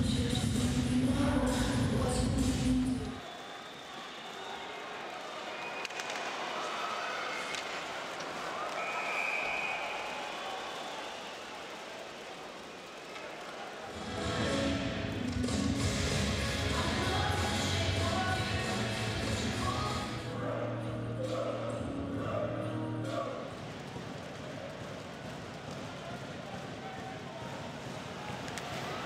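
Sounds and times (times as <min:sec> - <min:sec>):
arena crowd noise: 0:00.0 - 0:29.0
loud music: 0:14.0 - 0:23.3.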